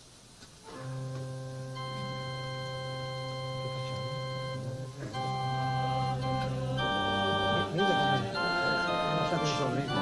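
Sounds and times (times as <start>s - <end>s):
organ chords: 0.7s - 10.0s.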